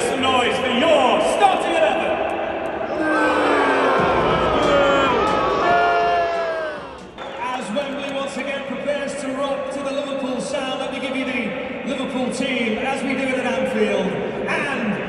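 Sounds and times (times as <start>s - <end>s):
crowd noise: 0.0s - 15.0s
voice over arena speakers: 7.2s - 15.0s.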